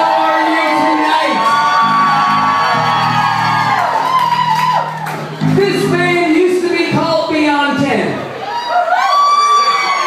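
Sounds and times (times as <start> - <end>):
crowd whooping and cheering: 0.0 - 5.5, 8.3 - 10.0
live band playing held notes: 0.0 - 8.6.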